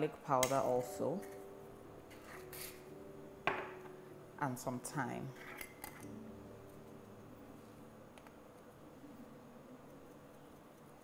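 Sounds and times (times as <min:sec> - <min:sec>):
seasoning shaking hiss: 0:02.2 - 0:03.0.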